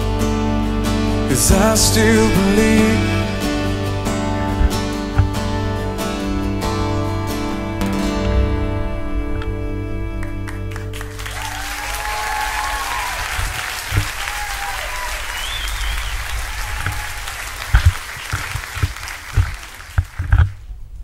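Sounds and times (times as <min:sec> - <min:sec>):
final song chord: 0:00.0 - 0:13.5
crowd applauding and cheering: 0:10.2 - 0:20.6
crowd whoops: 0:10.9 - 0:20.0.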